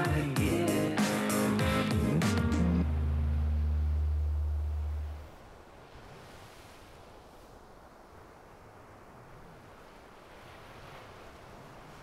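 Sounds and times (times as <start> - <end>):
ocean surf on beach: 0.0 - 12.0.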